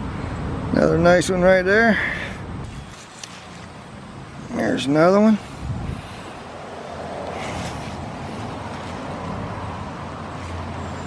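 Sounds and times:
even outdoor rush: 0.0s - 11.0s.

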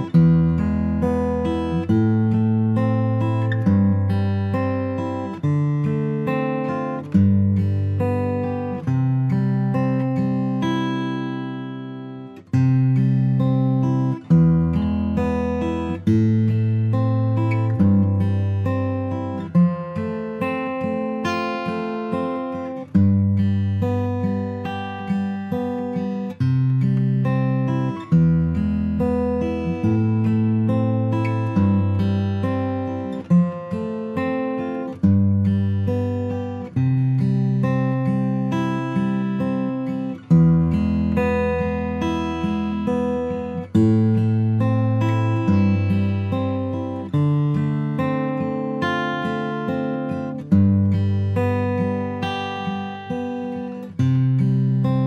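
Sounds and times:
acoustic guitar chords ringing: 0.0s - 55.0s.

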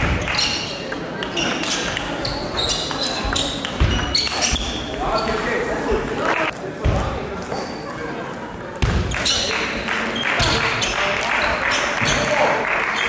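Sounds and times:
people chattering: 0.0s - 13.0s
table tennis balls clicking: 0.2s - 4.6s.

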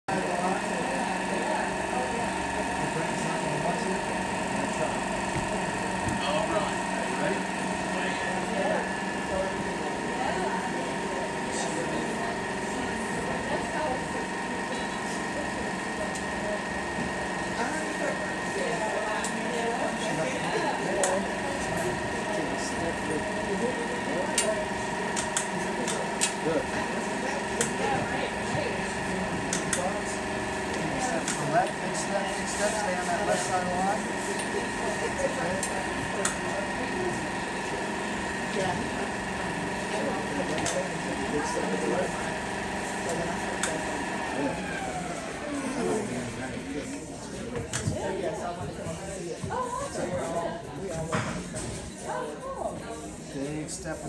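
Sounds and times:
machine hum: 0.1s - 50.9s.

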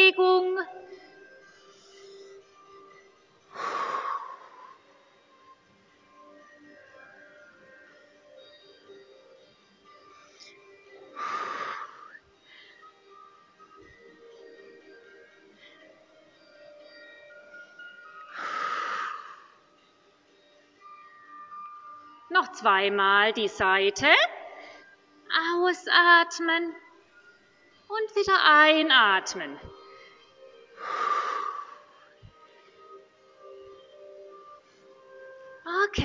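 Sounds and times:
faint background music: 0.0s - 36.0s
loud breath out: 11.2s - 12.8s, 18.3s - 19.6s.

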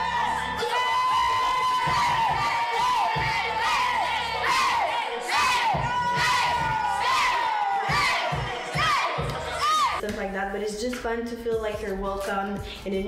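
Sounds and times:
women cheering and screaming: 0.0s - 10.0s.

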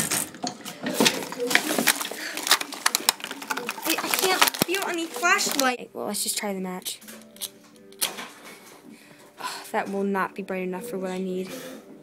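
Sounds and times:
background music of held tones: 0.0s - 12.0s.

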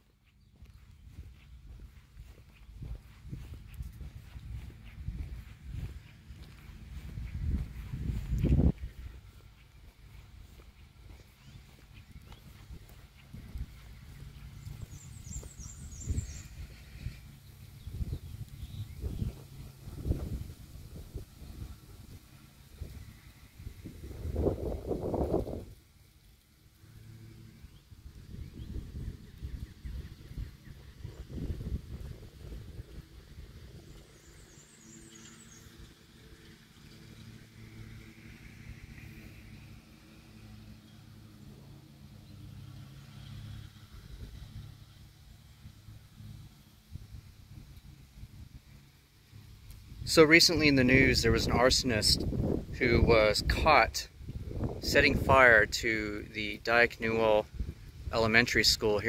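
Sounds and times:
footsteps: 0.0s - 17.4s
bird chirping: 0.0s - 20.4s, 27.5s - 37.4s
rushing wind or traffic: 0.0s - 59.0s.

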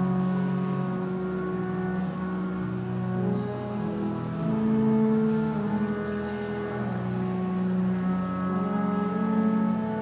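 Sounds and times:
organ playing sustained chords: 0.0s - 10.0s.

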